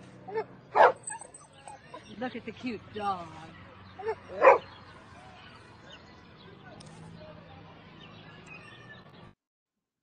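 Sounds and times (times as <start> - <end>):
dog yelping and whimpering: 0.3 - 2.1, 4.0 - 4.6.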